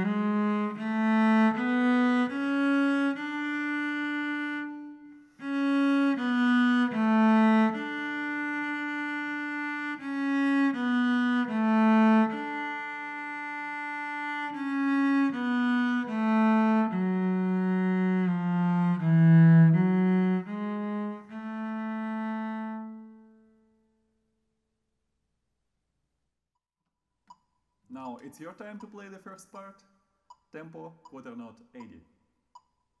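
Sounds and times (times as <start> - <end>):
solo cello playing: 0.0 - 23.8.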